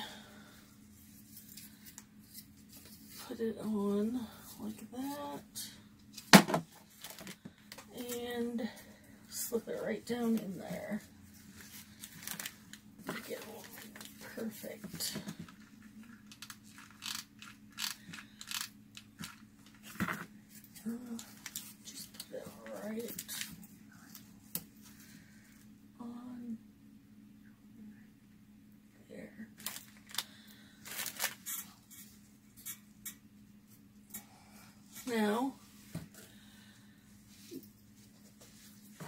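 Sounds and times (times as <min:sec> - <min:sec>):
faint low hum: 0:00.0 - 0:39.0
cardboard rustling and crinkling: 0:10.2 - 0:15.7, 0:29.6 - 0:30.2, 0:30.8 - 0:31.6.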